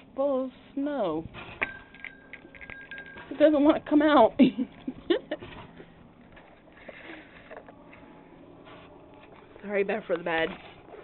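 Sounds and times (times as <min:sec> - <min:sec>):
handling noise: 0:01.2 - 0:11.0.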